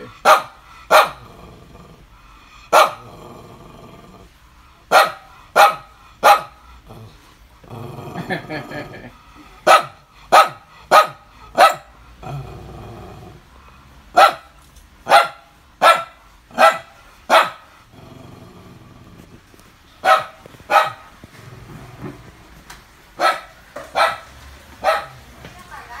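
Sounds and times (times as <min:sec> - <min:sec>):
small dog barking: 0:00.2 - 0:01.2, 0:02.7 - 0:03.0, 0:04.9 - 0:06.6, 0:09.6 - 0:11.9, 0:14.2 - 0:17.6, 0:20.0 - 0:21.1, 0:23.2 - 0:25.3.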